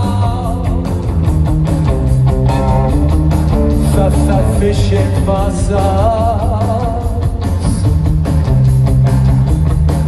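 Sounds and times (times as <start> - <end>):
electric guitar: 0.0 - 10.0
live rock band playing: 0.0 - 10.0.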